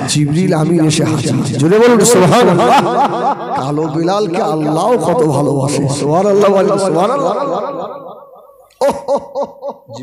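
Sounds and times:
man chanting: 0.0 - 8.3
man laughing: 1.8 - 5.2, 6.9 - 10.0.

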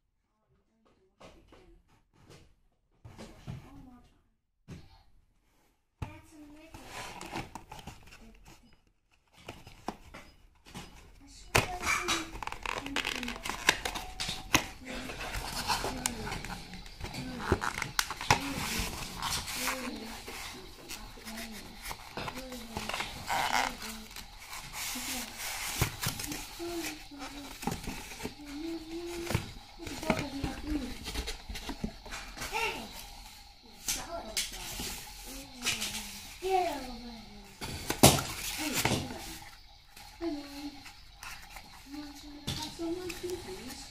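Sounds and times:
cardboard and foam packaging rustling: 6.3 - 43.9.

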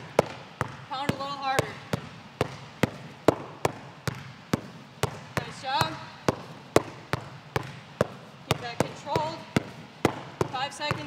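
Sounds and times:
basketball bouncing on gym floor: 0.0 - 11.0.

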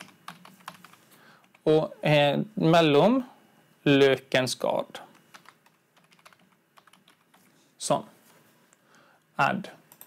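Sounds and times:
typing on computer keyboard: 5.1 - 7.4.

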